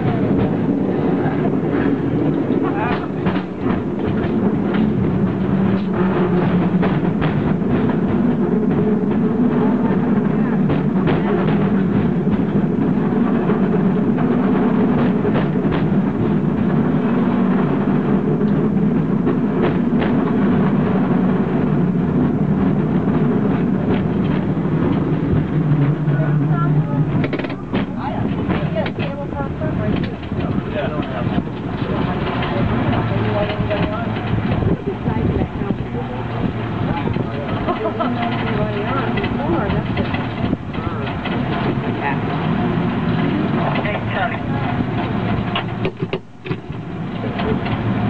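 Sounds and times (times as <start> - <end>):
people talking: 0.0 - 4.8, 9.2 - 13.6, 25.9 - 44.9
cable car rumbling on rails: 0.0 - 48.0.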